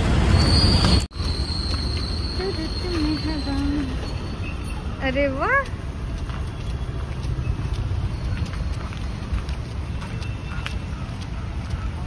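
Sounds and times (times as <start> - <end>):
road traffic rumble: 0.0 - 12.0
footsteps on tiled pavement: 0.2 - 12.0.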